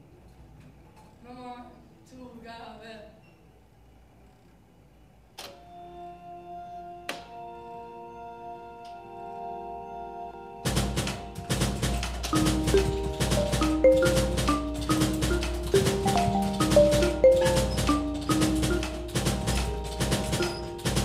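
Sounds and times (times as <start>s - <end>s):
percussive clicking beat: 10.7s - 21.0s
marimba melody: 11.0s - 21.0s.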